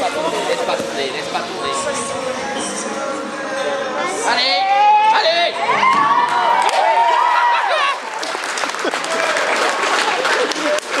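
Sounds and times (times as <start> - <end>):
crowd cheering and shouting: 1.6 - 11.0
crowd clapping: 6.2 - 11.0.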